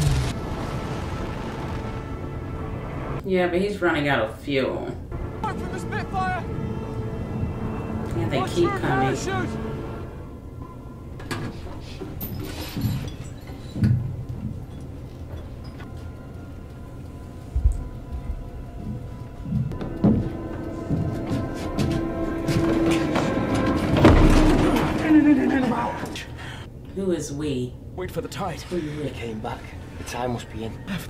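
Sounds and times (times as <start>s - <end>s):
tense droning music: 0.0s - 3.2s, 5.1s - 12.3s, 13.7s - 26.4s
muffled dialogue: 4.0s - 10.2s.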